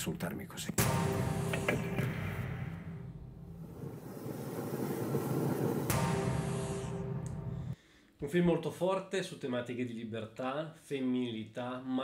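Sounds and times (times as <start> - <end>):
sharp hit: 0.8 - 7.8
low dark drone: 5.6 - 7.8.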